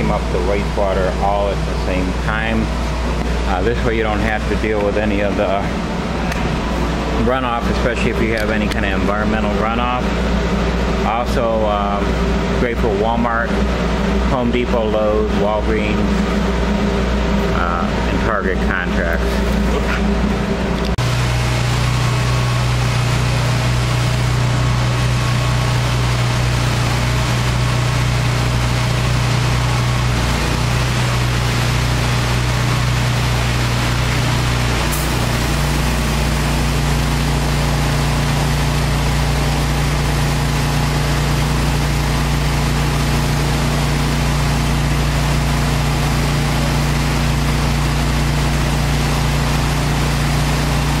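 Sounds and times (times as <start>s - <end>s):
engine hum: 0.0s - 51.0s
spray hiss and vacuum: 34.8s - 36.8s.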